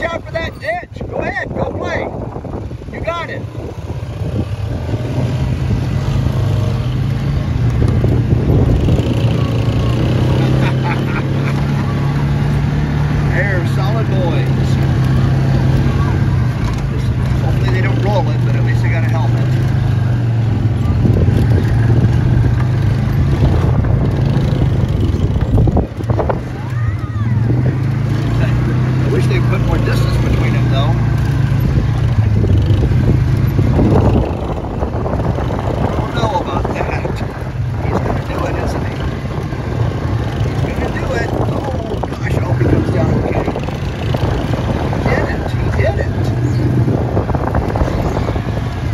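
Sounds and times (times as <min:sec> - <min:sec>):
atv engines running: 0:00.0 - 0:48.9.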